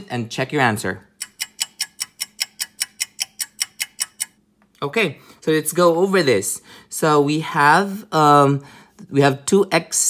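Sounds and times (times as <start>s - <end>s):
clock ticking: 1.1s - 4.4s.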